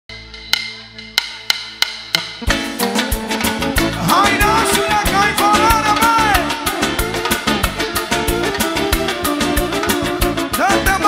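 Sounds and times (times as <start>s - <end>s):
sharp percussion clicks: 0.2s - 10.0s
live band music: 0.2s - 11.0s.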